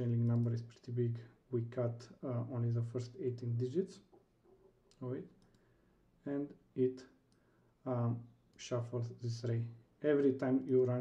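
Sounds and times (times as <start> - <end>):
faint computer clicks: 0.1 - 0.6, 4.8 - 5.7.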